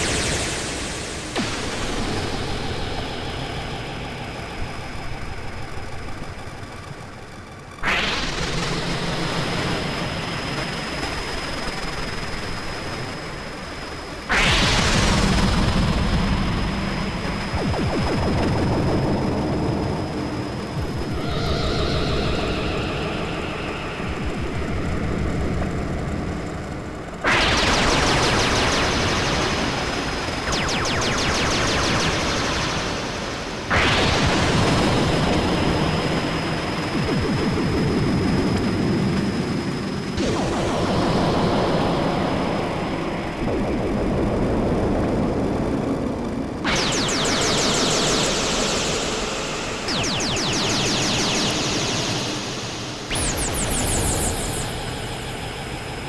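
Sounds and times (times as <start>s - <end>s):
noisy synth swells: 0.0s - 56.0s
low pulsing synth bass: 16.3s - 26.4s
high whistling synth tone: 17.2s - 25.4s, 46.7s - 56.0s.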